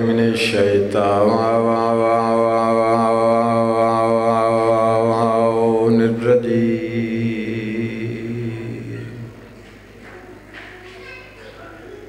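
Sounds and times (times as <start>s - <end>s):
man chanting through loudspeakers: 0.0s - 9.3s
hall echo: 0.0s - 12.0s.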